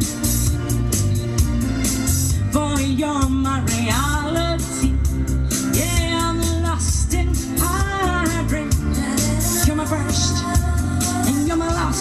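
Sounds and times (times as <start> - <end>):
latin-style music with beat and bass: 0.0 - 12.0
woman singing into microphone: 2.5 - 12.0.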